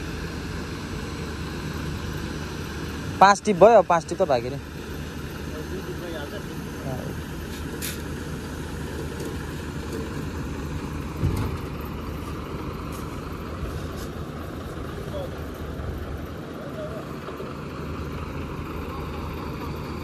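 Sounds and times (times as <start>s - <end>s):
diesel truck engine rumbling: 0.0s - 20.0s
low thump: 11.1s - 11.7s.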